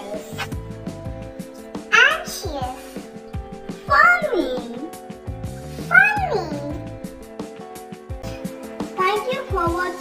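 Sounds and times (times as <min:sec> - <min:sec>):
children's music with soft beat: 0:00.0 - 0:10.0.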